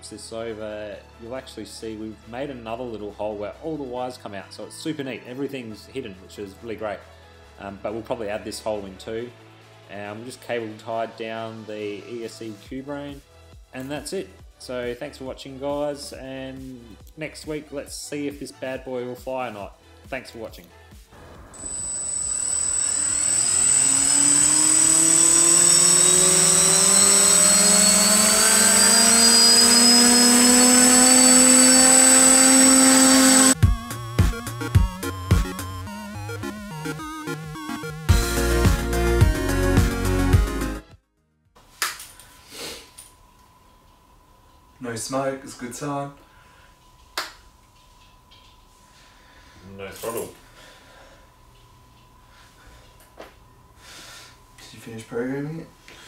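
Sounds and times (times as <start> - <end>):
quadcopter motors whirring: 21.2 - 33.6
thin high whine: 21.2 - 34.7, 42.2 - 56.0
electronic music: 21.2 - 40.8.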